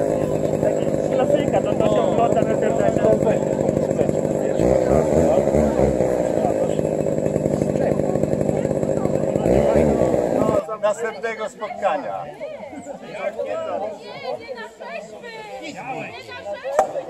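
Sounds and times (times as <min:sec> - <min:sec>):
chainsaw engine revving: 0:00.0 - 0:10.8
men talking: 0:00.0 - 0:17.0.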